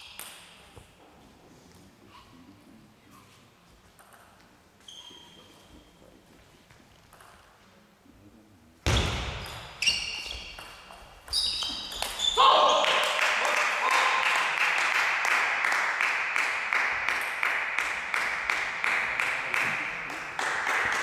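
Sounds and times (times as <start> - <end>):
shoes squeaking on floor: 4.8 - 6.4, 8.9 - 12.5
people shouting and cheering: 12.2 - 14.9.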